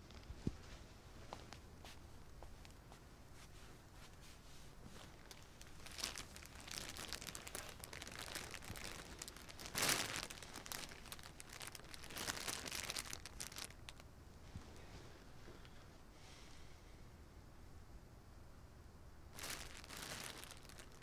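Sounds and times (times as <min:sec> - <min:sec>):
plastic wrapping crackling: 0:05.0 - 0:14.1, 0:19.3 - 0:21.0.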